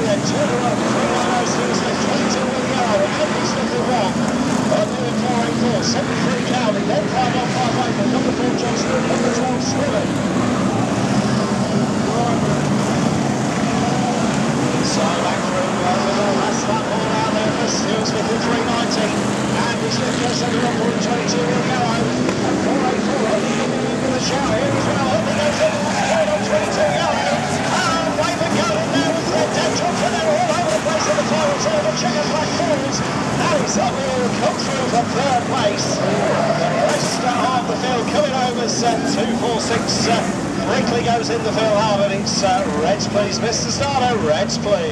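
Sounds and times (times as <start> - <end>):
racing car engines: 0.0 - 44.9.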